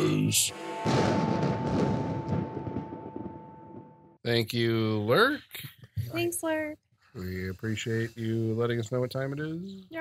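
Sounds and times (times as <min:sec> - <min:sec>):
held high note: 0:00.0 - 0:03.8
loud ringing drum hit: 0:00.0 - 0:04.2.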